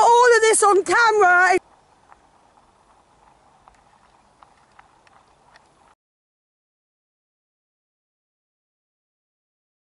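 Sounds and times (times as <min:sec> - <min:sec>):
horse hooves on tarmac: 0:00.0 - 0:06.0.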